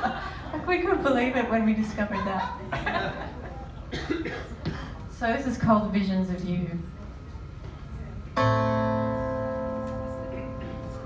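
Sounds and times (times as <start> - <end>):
guitar chord ringing: 8.4 - 11.0.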